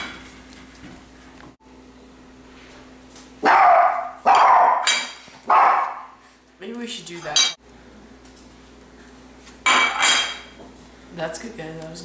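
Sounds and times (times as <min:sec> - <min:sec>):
dog barking loudly: 0:03.4 - 0:06.2.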